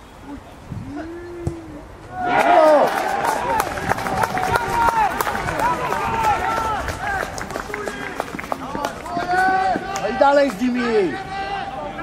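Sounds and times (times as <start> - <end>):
people shouting and cheering: 2.1 - 12.0.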